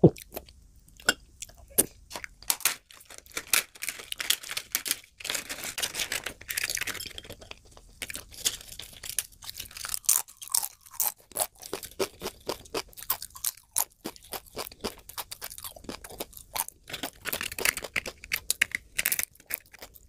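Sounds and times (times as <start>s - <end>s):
chewing crisp food: 0.0s - 20.0s.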